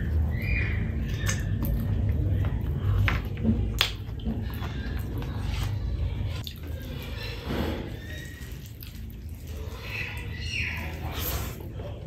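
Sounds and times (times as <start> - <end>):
chewing and wet mouth noises: 0.0 - 12.0.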